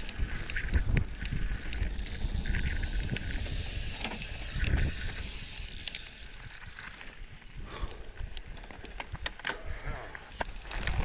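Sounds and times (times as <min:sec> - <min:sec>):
wind buffeting microphone: 0:00.0 - 0:06.7
bike chain and frame rattling: 0:00.0 - 0:11.0
bike tyres rumbling on dirt: 0:00.0 - 0:11.0.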